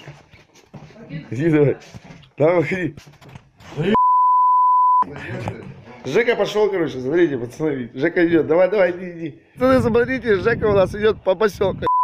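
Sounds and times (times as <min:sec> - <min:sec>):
censor bleep: 0:04.0 - 0:05.1
man's voice: 0:05.0 - 0:12.0.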